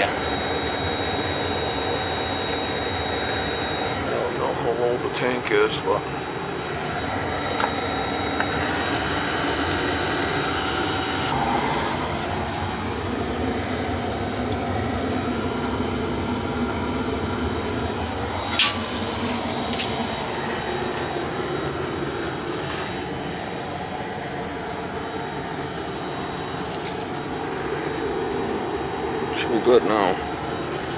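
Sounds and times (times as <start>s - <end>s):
boiler burner rushing: 0.0s - 30.9s.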